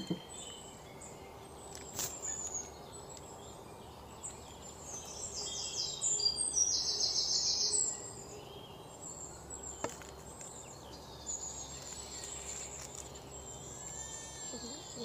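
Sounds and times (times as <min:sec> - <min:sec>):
birds chirping and trilling: 0:00.0 - 0:15.0.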